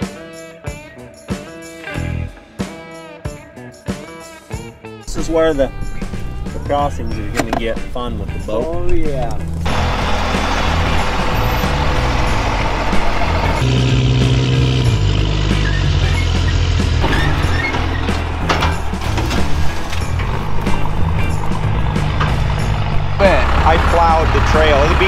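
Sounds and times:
background music: 0:00.0 - 0:25.0
knocks and rattles: 0:09.5 - 0:25.0
truck engine running under load: 0:09.5 - 0:25.0.

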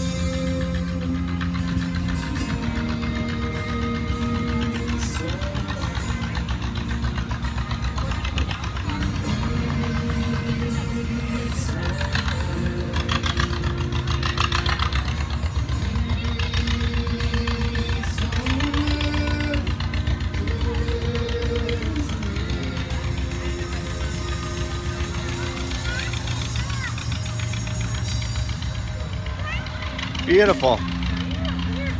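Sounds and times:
continuous low rumble: 0:00.0 - 0:31.9
strummed acoustic guitar: 0:00.0 - 0:31.9.

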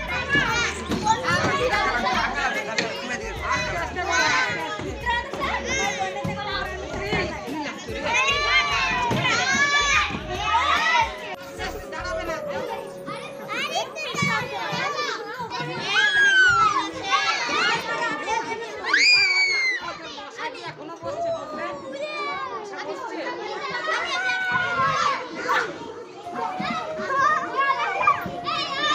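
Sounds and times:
children shouting and squealing: 0:00.0 - 0:11.4, 0:12.5 - 0:28.9.

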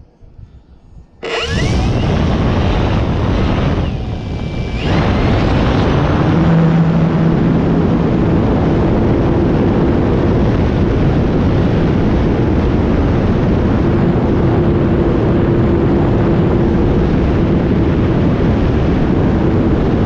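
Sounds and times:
model plane motor and propeller whine: 0:00.9 - 0:20.0.

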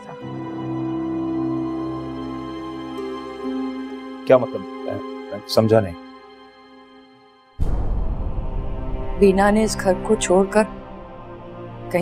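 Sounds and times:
drama score held notes: 0:00.0 - 0:12.0.

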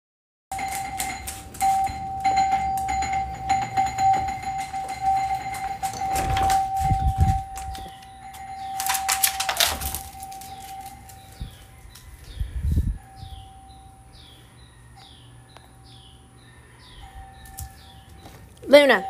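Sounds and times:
rustling and handling noise: 0:00.6 - 0:12.3
birds chirping faintly: 0:10.1 - 0:19.0.

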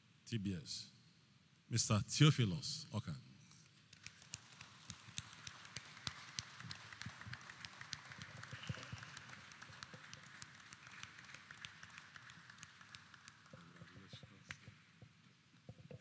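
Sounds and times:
scattered applause: 0:03.9 - 0:14.7.

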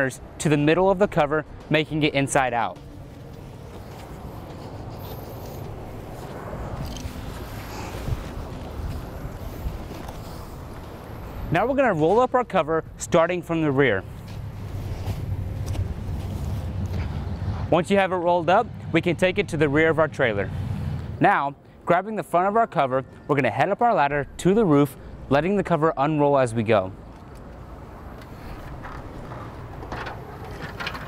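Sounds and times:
low outdoor rumble: 0:00.4 - 0:21.2, 0:24.1 - 0:31.0.

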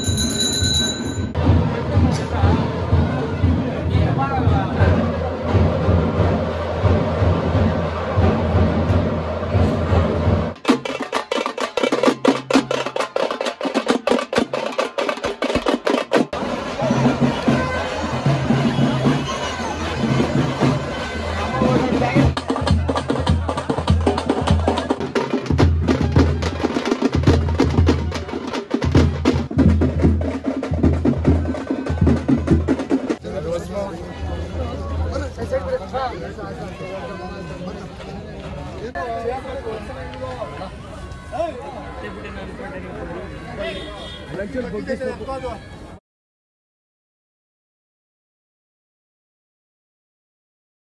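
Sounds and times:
crowd voices: 0:00.0 - 0:46.0
fast dense drumming: 0:21.7 - 0:33.2.

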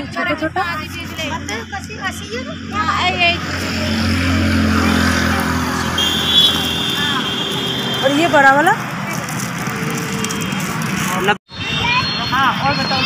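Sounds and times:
motor vehicle running: 0:00.0 - 0:11.7
voices talking: 0:00.0 - 0:13.0.

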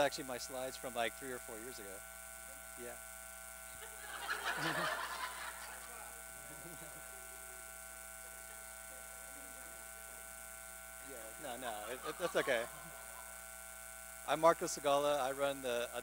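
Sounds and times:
electrical hum: 0:00.0 - 0:16.0
audience laughing: 0:03.8 - 0:07.0, 0:11.5 - 0:13.3.

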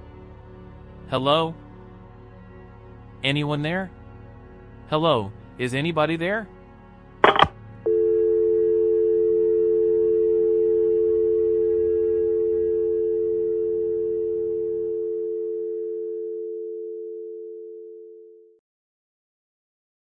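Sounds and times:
faint background music: 0:00.0 - 0:10.0
telephone dial tone: 0:07.2 - 0:18.5.

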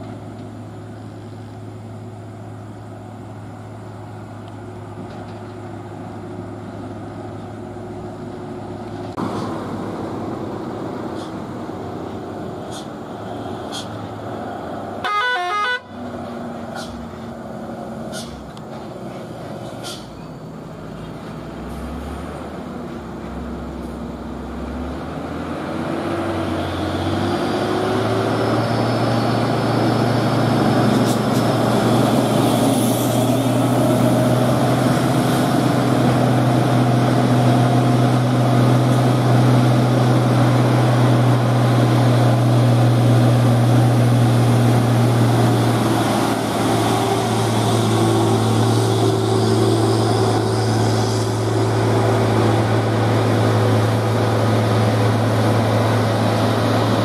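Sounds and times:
diesel truck engine drone: 0:00.0 - 0:57.0.

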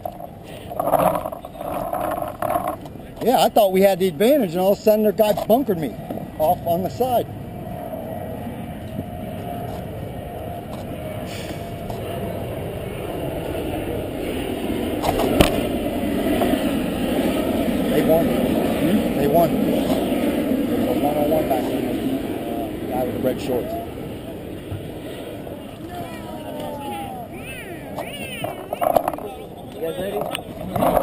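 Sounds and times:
people chattering: 0:08.4 - 0:31.0.

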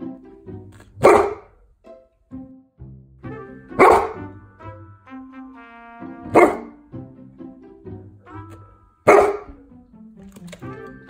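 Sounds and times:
dog barking: 0:01.0 - 0:01.6, 0:03.8 - 0:04.3, 0:06.3 - 0:06.8, 0:09.0 - 0:09.6.

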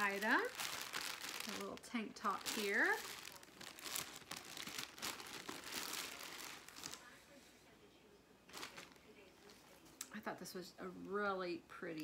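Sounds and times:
plastic packaging crinkling: 0:00.0 - 0:07.1, 0:08.5 - 0:09.2.

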